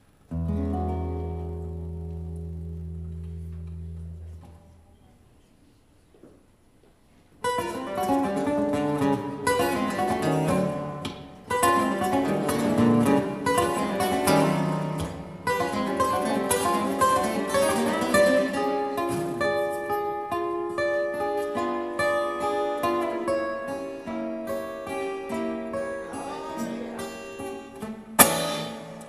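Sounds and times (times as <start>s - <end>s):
acoustic guitars playing: 0.0s - 4.9s, 7.4s - 29.0s.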